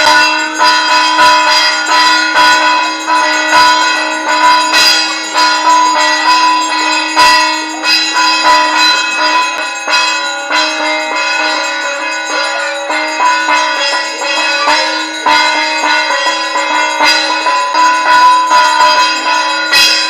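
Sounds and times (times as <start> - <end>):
temple bells ringing: 0.0 - 20.0.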